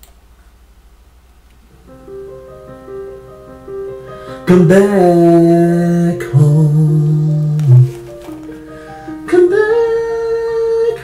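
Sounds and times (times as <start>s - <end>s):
sustained keyboard chords: 1.8s - 11.0s.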